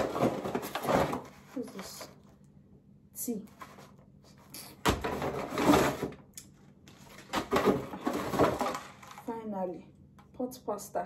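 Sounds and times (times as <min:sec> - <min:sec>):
rummaging through cardboard box: 0:00.0 - 0:02.2, 0:05.0 - 0:06.2, 0:06.9 - 0:09.4.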